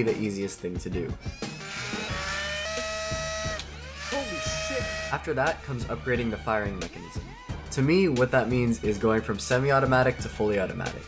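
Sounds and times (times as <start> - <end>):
flywheel motors whining: 1.3 - 5.2.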